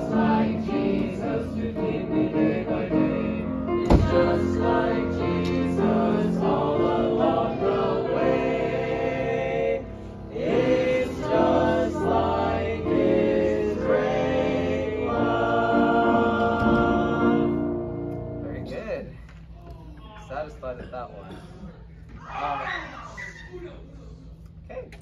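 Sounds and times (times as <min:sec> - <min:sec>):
choir singing a hymn: 0:00.0 - 0:18.4
thump: 0:03.8 - 0:04.3.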